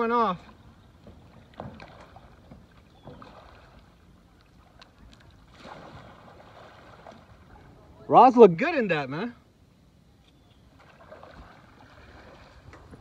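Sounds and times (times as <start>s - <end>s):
kayak paddle splashing water: 0.5s - 7.8s, 10.7s - 13.0s.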